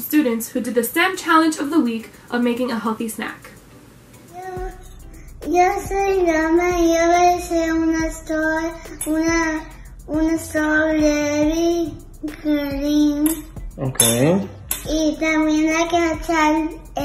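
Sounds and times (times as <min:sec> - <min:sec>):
child singing: 0:04.3 - 0:13.5, 0:14.9 - 0:17.0.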